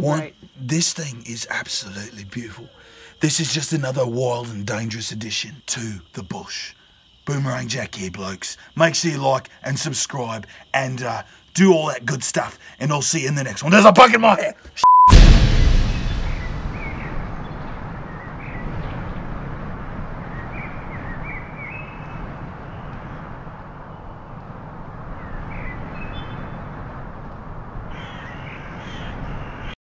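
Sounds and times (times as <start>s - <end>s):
loud swoosh: 15.1s - 19.4s
steady rushing background: 15.1s - 25.3s
bird calls: 27.9s - 29.8s.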